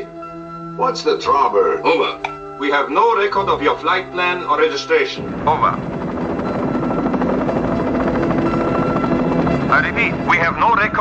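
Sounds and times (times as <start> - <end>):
helicopter rotor chop: 4.7 - 11.0.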